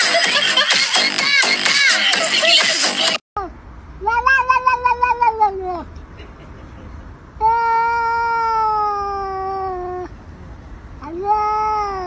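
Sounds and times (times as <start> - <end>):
cat meowing: 4.0 - 5.9, 11.0 - 12.0.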